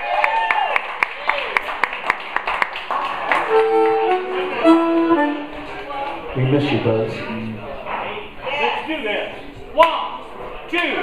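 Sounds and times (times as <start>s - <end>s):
blues harmonica long notes: 3.4s - 5.9s.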